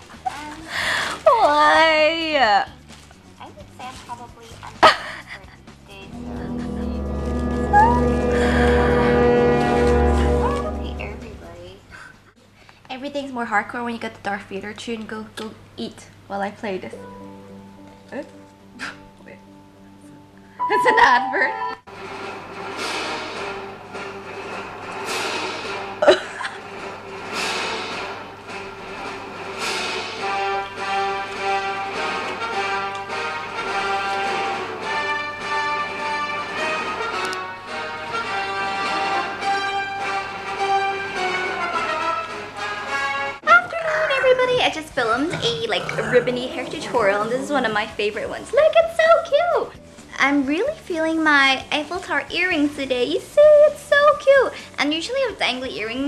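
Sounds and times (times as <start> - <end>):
plastic bag and paper rustling: 0.0 - 1.8, 2.7 - 4.8
background music: 0.2 - 11.9, 16.5 - 56.0.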